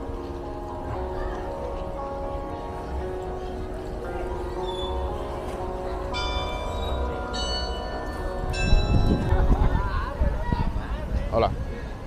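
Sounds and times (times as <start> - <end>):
church bell ringing: 0.0 - 10.2.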